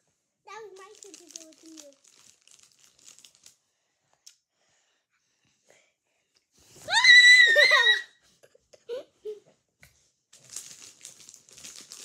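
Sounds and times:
girl squealing: 0:06.9 - 0:08.2.

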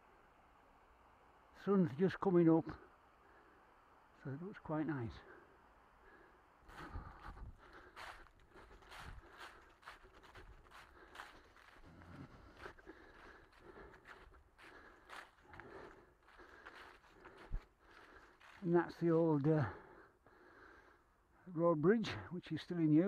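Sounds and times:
footsteps on grass: 0:06.7 - 0:19.1.

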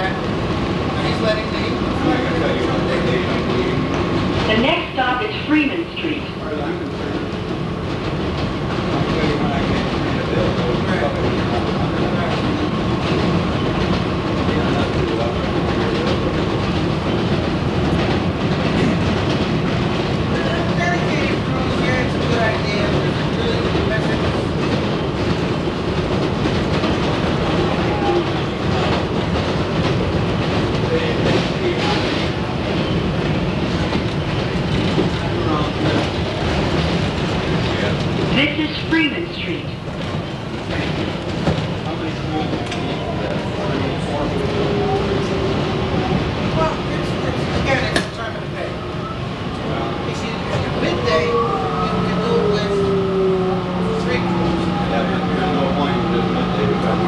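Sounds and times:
train wheels clickety-clack: 0:00.0 - 0:57.0.

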